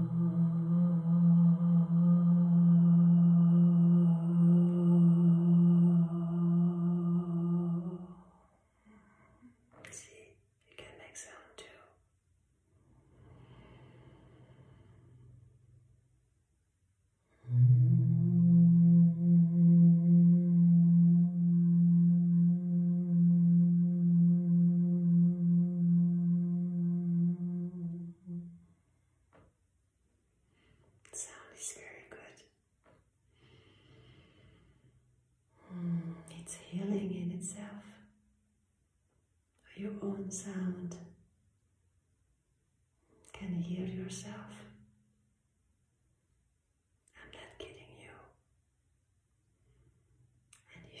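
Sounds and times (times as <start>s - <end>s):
woman humming a long note: 0.0s - 8.4s, 17.3s - 28.7s, 35.6s - 36.4s
breathy whispered vocal sounds: 0.0s - 12.0s, 31.1s - 32.4s, 35.6s - 38.0s.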